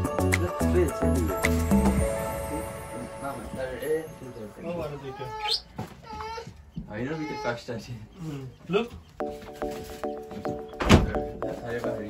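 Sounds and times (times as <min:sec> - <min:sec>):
voices talking: 0:00.2 - 0:09.6.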